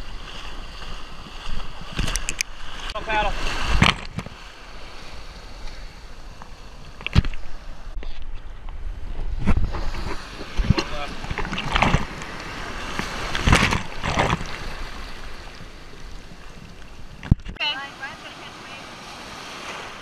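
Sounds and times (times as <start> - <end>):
churning surf water: 0.0 - 8.0, 9.0 - 20.0
waves splashing over camera: 0.0 - 20.0.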